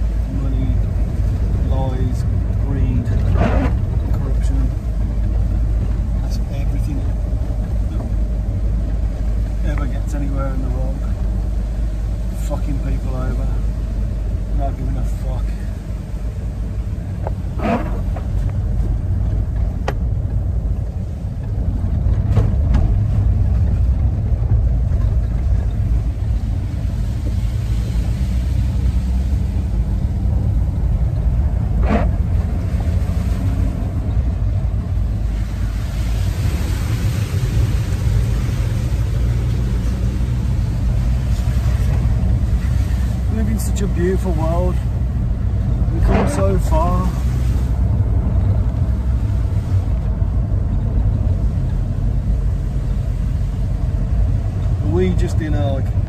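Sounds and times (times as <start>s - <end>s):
tyre road noise: 0.0s - 56.0s
vehicle engine rumble: 0.0s - 56.0s.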